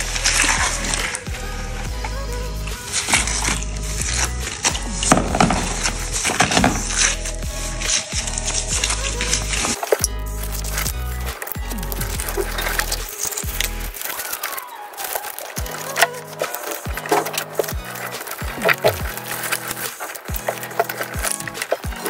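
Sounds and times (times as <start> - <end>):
background music with bass line: 0.0 - 14.1, 15.6 - 22.0.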